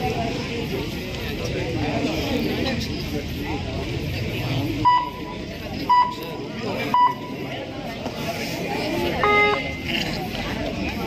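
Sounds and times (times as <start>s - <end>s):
crowd chatter: 0.0s - 11.0s
short electronic beeps: 4.8s - 6.3s, 6.9s - 7.3s, 9.2s - 9.9s
long low electronic tone: 9.2s - 9.9s.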